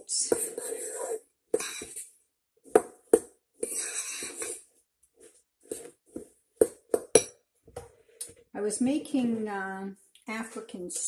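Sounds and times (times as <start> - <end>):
spoon scraping oat mixture: 0.0 - 2.2, 3.6 - 7.1.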